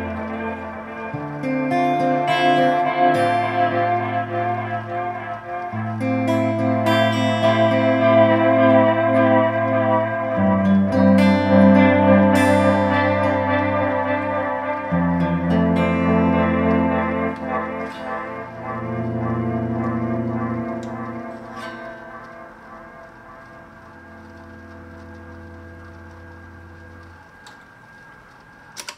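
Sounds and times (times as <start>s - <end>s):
electric guitar chords with echo: 0.0s - 28.6s.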